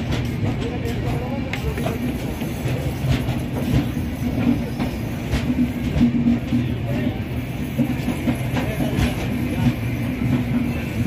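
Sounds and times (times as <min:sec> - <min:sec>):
train wheels rumbling: 0:00.0 - 0:11.0.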